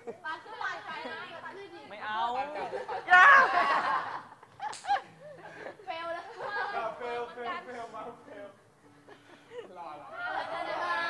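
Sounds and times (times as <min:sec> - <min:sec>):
young people chattering and laughing: 0:00.0 - 0:11.0.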